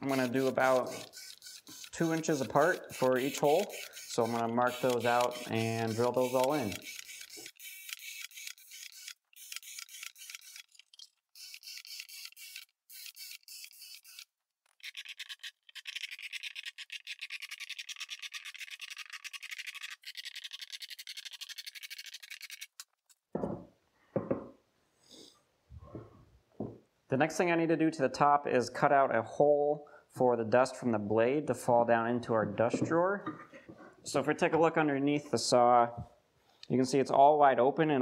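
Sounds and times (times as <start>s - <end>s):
cordless drill drilling wood: 0.1s - 15.4s.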